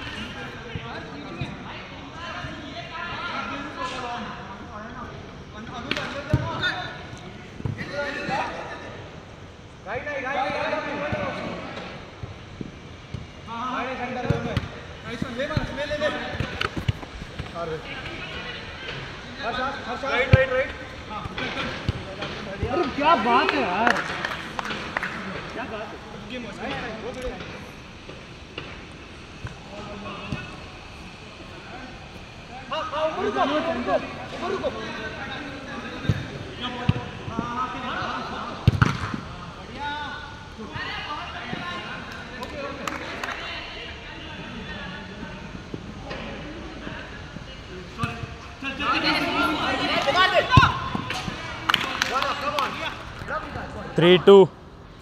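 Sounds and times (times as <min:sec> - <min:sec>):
players calling and shouting: 0:00.0 - 0:55.0.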